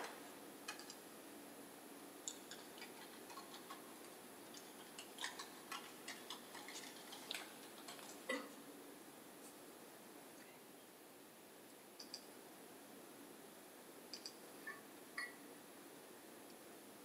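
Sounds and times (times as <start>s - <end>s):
small clicks and taps: 0.7s - 1.0s, 14.1s - 14.4s.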